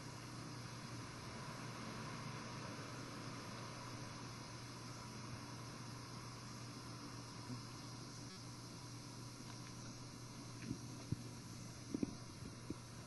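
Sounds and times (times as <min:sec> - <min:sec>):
steady hiss: 0:00.0 - 0:13.0.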